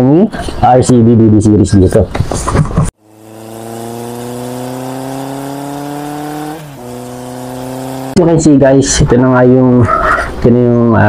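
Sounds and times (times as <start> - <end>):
engine accelerating: 3.0 - 8.8.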